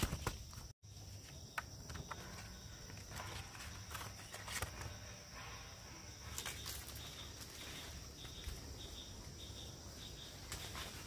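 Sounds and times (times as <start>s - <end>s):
leaves rustling: 2.2s - 11.0s.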